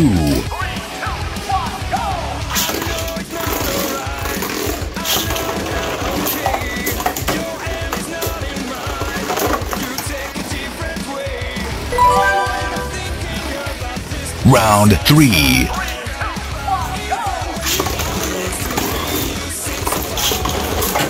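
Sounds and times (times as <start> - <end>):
background music: 11.9 - 13.6.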